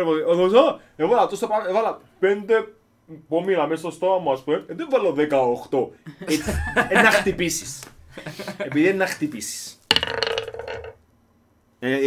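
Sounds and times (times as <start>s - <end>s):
people talking: 0.0s - 9.8s
group laughing: 6.0s - 7.5s, 8.1s - 9.0s
woman laughing: 6.2s - 7.3s.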